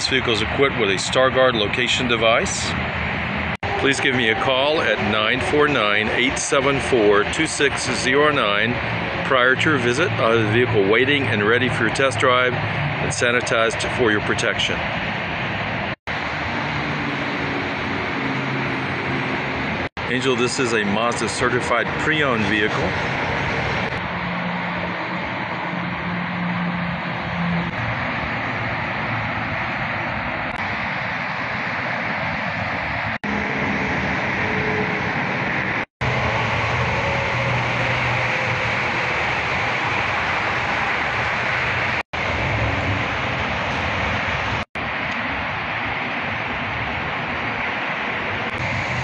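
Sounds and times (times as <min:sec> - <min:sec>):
constant rushing haze: 0:00.0 - 0:49.0.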